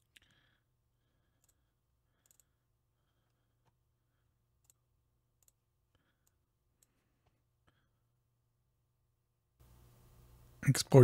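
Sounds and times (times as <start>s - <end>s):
steady low hum: 9.6s - 11.0s.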